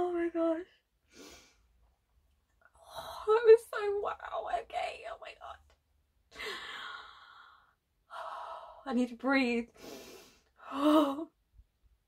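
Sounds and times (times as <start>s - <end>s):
woman sighing breathily: 6.3s - 8.8s, 9.8s - 11.3s.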